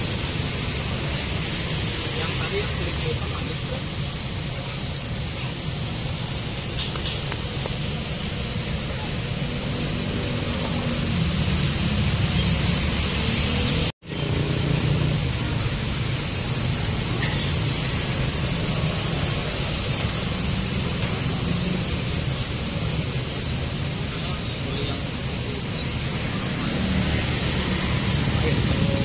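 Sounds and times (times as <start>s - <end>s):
roadside traffic hum: 0.0s - 29.0s.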